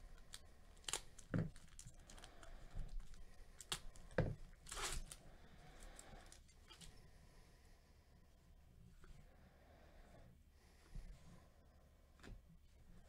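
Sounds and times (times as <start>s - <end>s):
foil wrapper crinkling: 0.0s - 5.2s
wrapper ripping: 0.2s - 2.4s, 4.6s - 5.2s.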